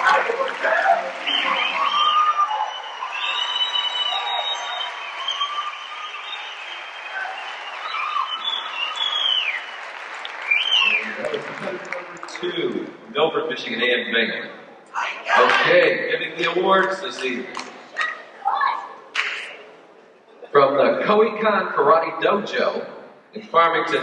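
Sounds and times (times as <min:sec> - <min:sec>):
shouted cheers: 0:00.0 - 0:11.6
audience applauding: 0:00.0 - 0:13.0, 0:16.5 - 0:19.6
man's voice over loudspeaker: 0:11.0 - 0:14.7, 0:15.4 - 0:17.6, 0:20.5 - 0:24.0.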